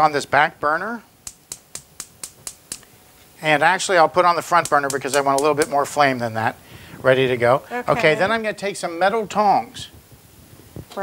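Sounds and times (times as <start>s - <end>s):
gas burner igniter clicking: 1.2s - 2.9s, 4.5s - 6.0s.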